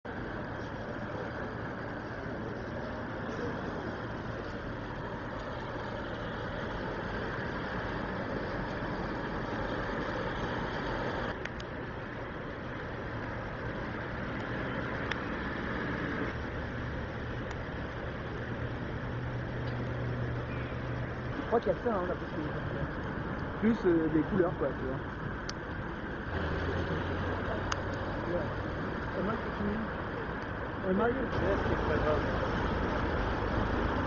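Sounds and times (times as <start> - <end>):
cars driving on wet road: 0.1 - 34.0.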